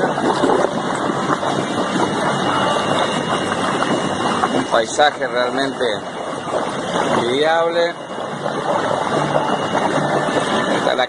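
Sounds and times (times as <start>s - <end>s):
water jets rushing and bubbling: 0.0s - 11.0s.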